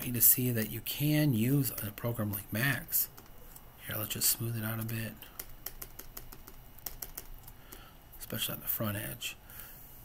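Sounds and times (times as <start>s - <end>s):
computer keyboard clicking: 4.8s - 7.9s.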